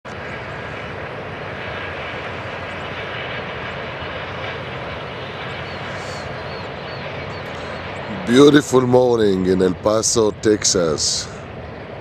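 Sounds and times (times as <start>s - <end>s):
paramotor engine and propeller drone: 0.1s - 12.0s.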